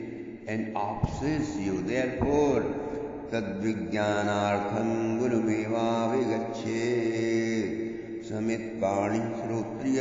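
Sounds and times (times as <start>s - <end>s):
man chanting in long notes: 0.0s - 10.0s.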